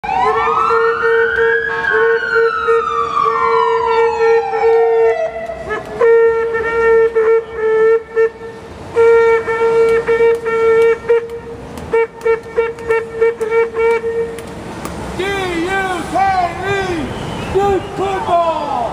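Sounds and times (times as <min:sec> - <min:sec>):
siren wailing: 0:00.0 - 0:08.0
vehicle horn blasts: 0:05.0 - 0:14.4.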